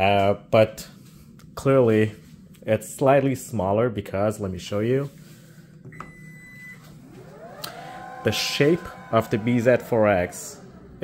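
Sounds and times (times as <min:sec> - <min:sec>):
short warning beep: 0:06.0 - 0:06.8.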